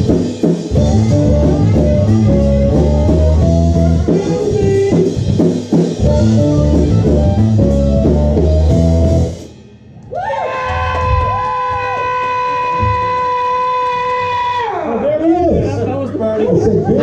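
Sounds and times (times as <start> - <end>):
live blues-rock band playing: 0.0 - 9.6.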